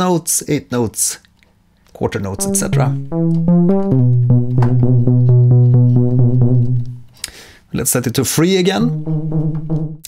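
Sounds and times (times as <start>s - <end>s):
synth bass notes pulsing: 2.4s - 7.2s, 8.8s - 10.0s.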